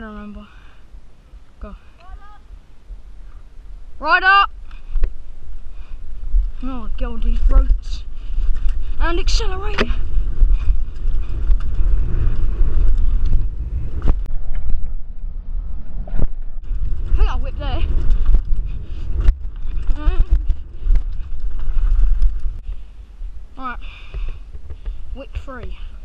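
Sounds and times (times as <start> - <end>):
wind rushing over microphone: 0.9 - 26.0
bike tyre and frame rattle: 4.6 - 15.2, 16.0 - 22.9.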